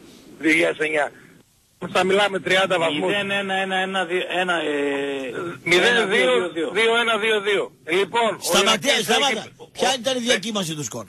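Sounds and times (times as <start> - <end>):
men talking: 0.4 - 11.0.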